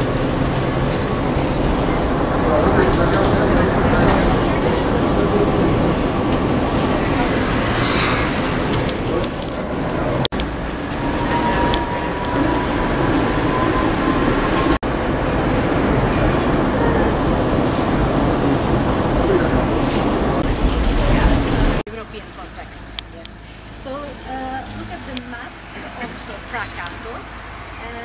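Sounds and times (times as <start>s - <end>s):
tram wheels rumbling on rails: 0.0s - 28.0s.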